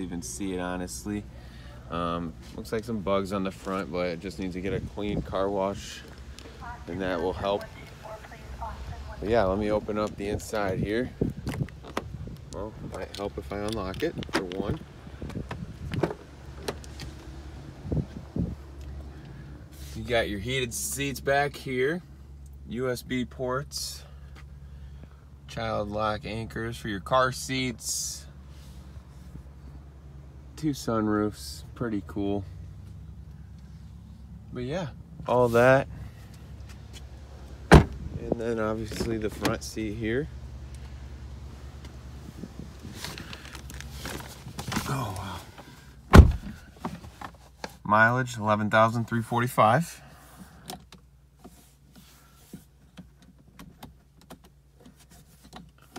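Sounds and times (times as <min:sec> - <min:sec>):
car door thumps: 0:37.7 - 0:38.2, 0:46.1 - 0:46.6
soft rustles: 0:40.7 - 0:47.8.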